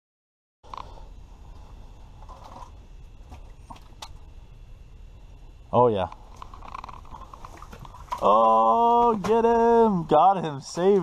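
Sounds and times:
low room rumble and hiss: 0.6 - 11.0.

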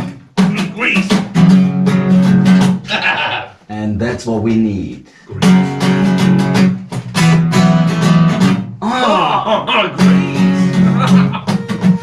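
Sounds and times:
acoustic guitar strumming: 0.0 - 3.3, 5.3 - 12.0.

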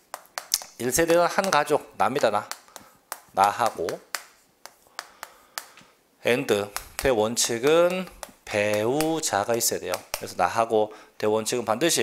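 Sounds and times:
chalk tapping on chalkboard: 0.0 - 5.9, 6.5 - 10.5.

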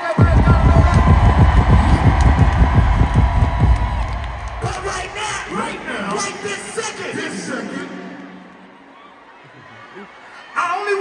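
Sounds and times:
deep bass kick drum roll: 0.2 - 5.9.

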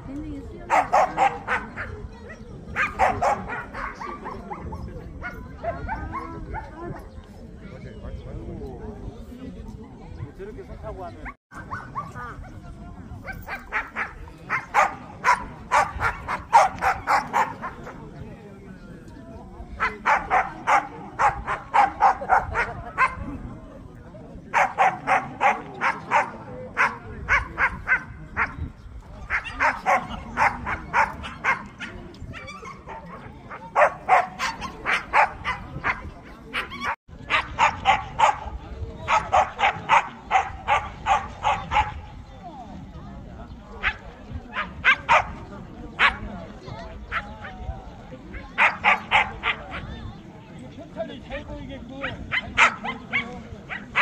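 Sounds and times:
dog barking: 0.7 - 1.9, 2.8 - 4.7, 5.6 - 6.7, 13.4 - 17.8, 19.8 - 23.2, 24.5 - 28.1, 29.3 - 38.4, 48.6 - 49.8, 52.0 - 54.0.

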